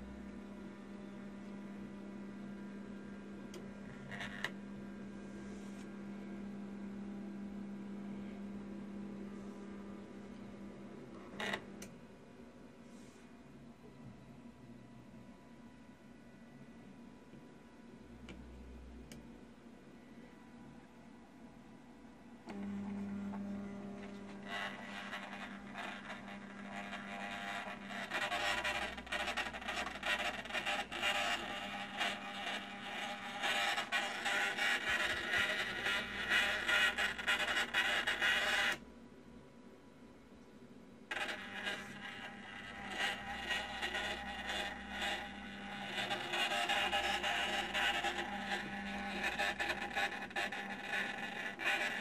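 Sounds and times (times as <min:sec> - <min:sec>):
low electrical hum: 0:00.0 - 0:52.0
small electric motor whirring: 0:24.0 - 0:38.8, 0:41.1 - 0:52.0.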